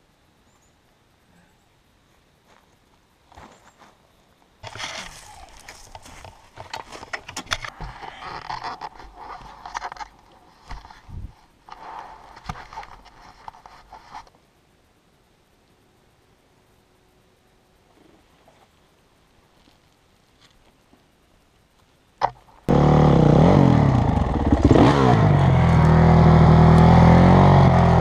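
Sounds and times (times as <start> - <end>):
rustling against microphone: 4.6 - 14.4.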